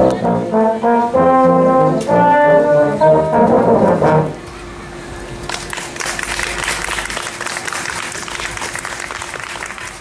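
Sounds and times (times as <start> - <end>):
audience applauding: 5.5 - 10.0.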